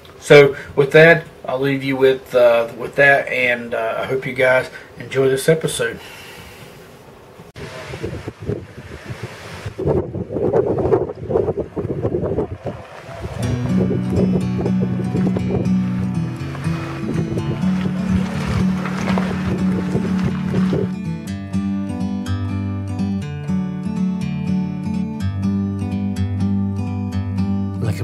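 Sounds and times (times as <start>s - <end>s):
wind buffeting microphone: 7.6s - 21.7s
music with low sustained notes: 13.4s - 28.0s.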